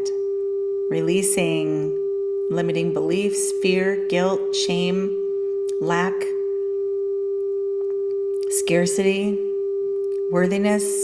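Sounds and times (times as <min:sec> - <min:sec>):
steady pure tone: 0:00.0 - 0:11.0.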